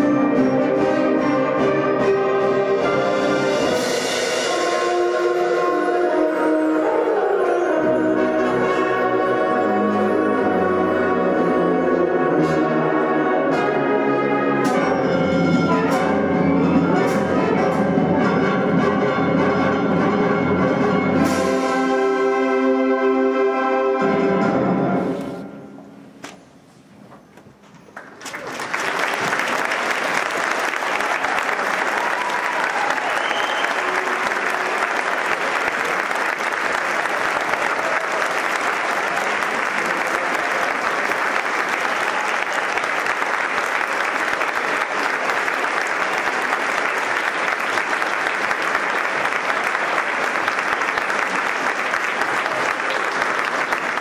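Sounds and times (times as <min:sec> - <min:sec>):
audience applauding: 0:27.9 - 0:54.0.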